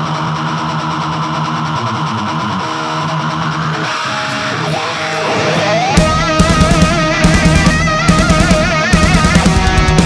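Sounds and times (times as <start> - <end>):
electric guitar chords ringing: 0.0 - 10.0
hard rock band playing: 0.0 - 10.0.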